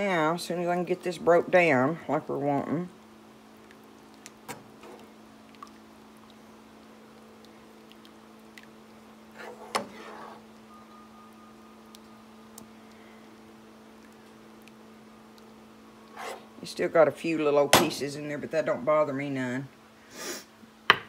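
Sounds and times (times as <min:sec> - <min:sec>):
steady low hum: 0:00.0 - 0:20.9.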